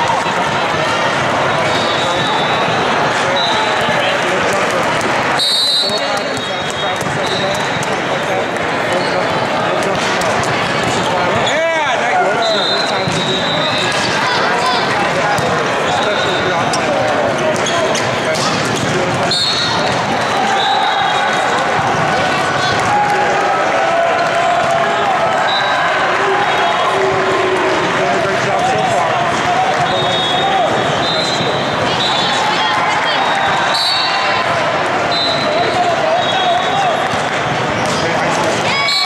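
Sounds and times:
babble of many voices: 0:00.0 - 0:39.0
volleyballs struck and bouncing: 0:02.2 - 0:08.8, 0:09.7 - 0:11.6, 0:12.9 - 0:25.2, 0:27.8 - 0:32.4, 0:36.6 - 0:38.9
sneakers squeaking on floor: 0:12.4 - 0:21.4.

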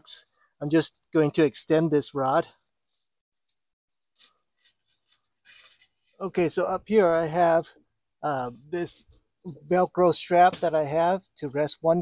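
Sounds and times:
fabric drapes rustling: 0:03.4 - 0:06.2.

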